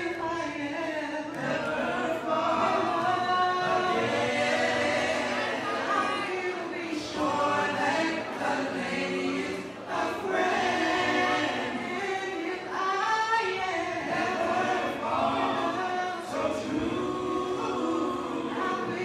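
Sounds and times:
vocal group singing in harmony: 0.0 - 19.0.

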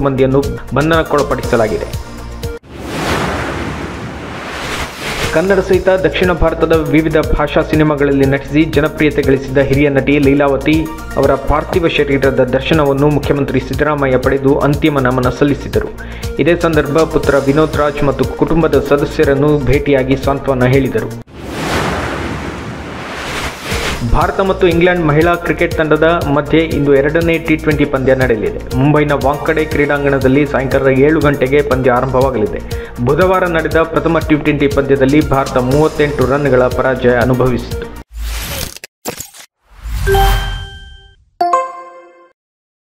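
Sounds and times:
whoosh sound effect: 2.6 - 5.6, 21.3 - 24.2
bright bell-like chime: 40.1 - 42.3
ringing tone: 40.1 - 42.3.

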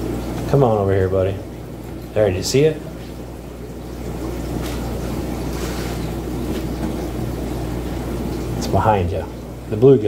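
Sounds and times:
constant low hum: 0.0 - 10.0.

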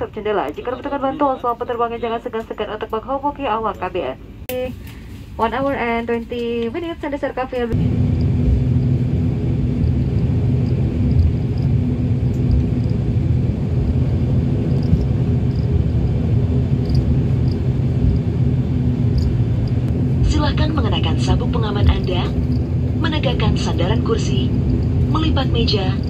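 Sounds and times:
turboprop engines droning: 0.0 - 26.0.

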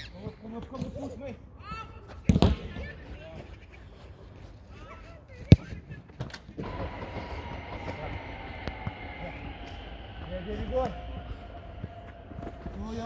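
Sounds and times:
high drawn-out train whine: 6.6 - 13.0
passing train: 6.6 - 13.0.

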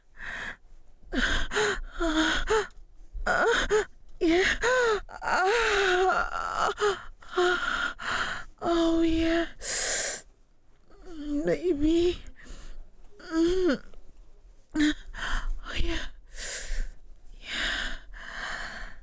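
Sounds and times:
woman gasping and moaning: 0.1 - 10.2, 13.2 - 13.9, 14.8 - 19.0.

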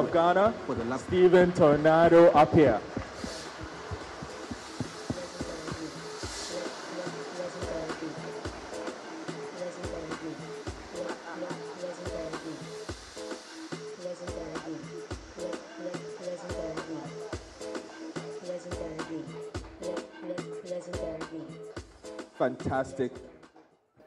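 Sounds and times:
smoke jets hissing: 0.0 - 20.8
music with steady beat: 0.0 - 23.6.

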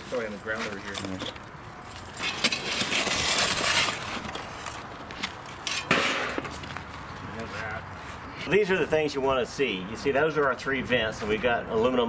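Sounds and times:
shovel scraping: 2.1 - 4.8.

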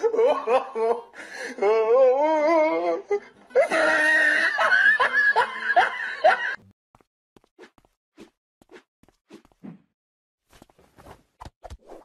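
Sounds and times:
person laughing: 3.6 - 6.6.

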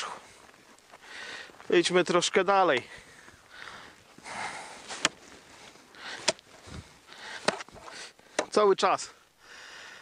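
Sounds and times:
footsteps crunching through snow: 0.0 - 8.0.

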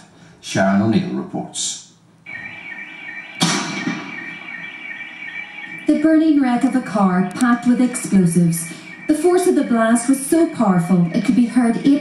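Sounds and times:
alarm pulsing high tone: 2.3 - 12.0
loud bang: 3.4 - 4.6.

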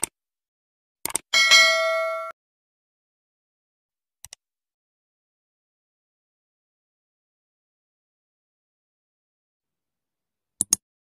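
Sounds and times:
bell ding: 1.4 - 2.4.

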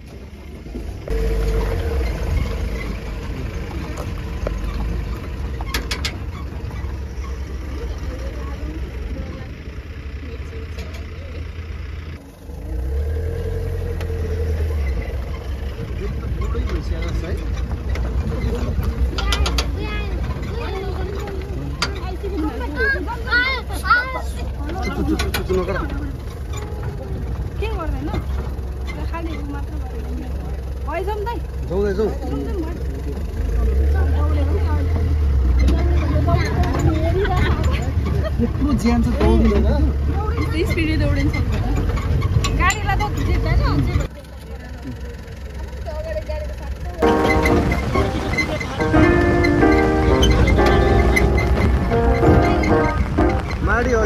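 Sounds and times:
engine rumbling: 0.0 - 54.0
murmured voices: 46.4 - 54.0.

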